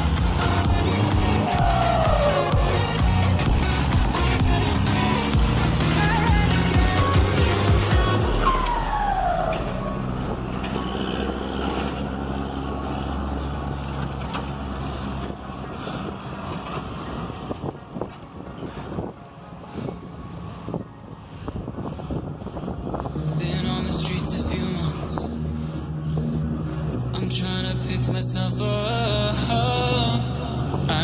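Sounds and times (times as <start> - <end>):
diesel truck engine pulling away: 0.0 - 21.2, 22.3 - 31.0.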